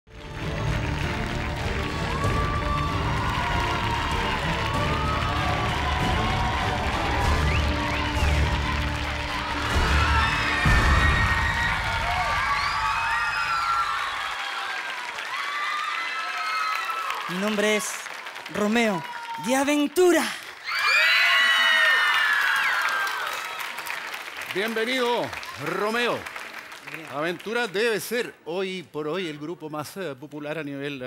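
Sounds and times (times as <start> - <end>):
audience cheering and shouting: 1.0 - 17.9, 18.5 - 19.8, 20.6 - 23.9.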